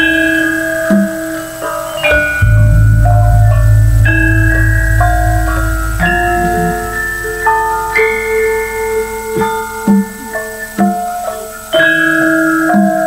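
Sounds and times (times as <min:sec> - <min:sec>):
deep gong hum: 0:02.1 - 0:10.3.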